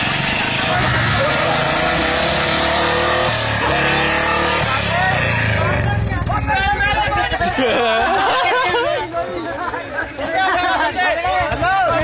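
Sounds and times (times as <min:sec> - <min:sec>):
people talking: 0:00.5 - 0:12.0.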